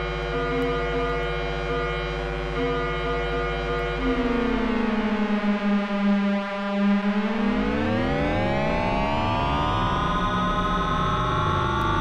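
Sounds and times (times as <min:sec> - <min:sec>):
buzzy synthesizer drone: 0:00.0 - 0:12.0.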